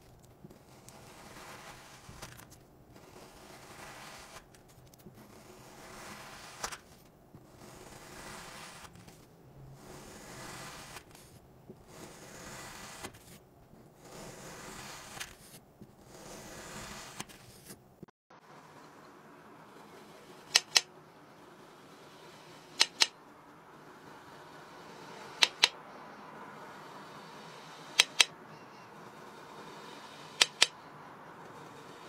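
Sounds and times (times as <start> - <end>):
knife slicing kinetic sand: 0.5 - 6.9, 7.5 - 9.1, 9.8 - 13.4, 14.0 - 17.8, 20.0 - 20.9, 21.9 - 23.2, 24.4 - 25.8, 27.4 - 28.3, 29.4 - 30.8.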